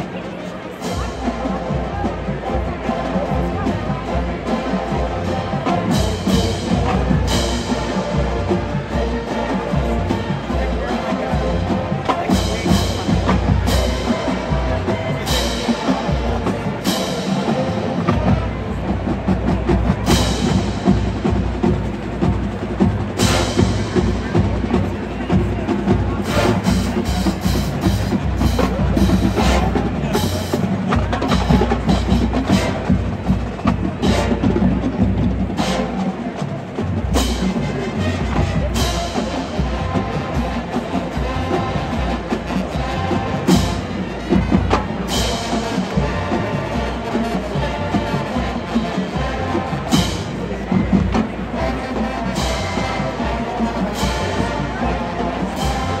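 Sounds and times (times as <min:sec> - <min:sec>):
marching band playing: 0:00.0 - 0:56.0.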